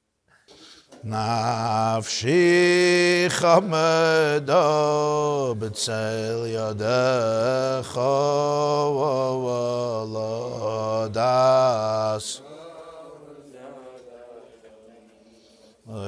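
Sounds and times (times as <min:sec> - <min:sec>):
men singing slow melody: 0:01.0 - 0:16.0.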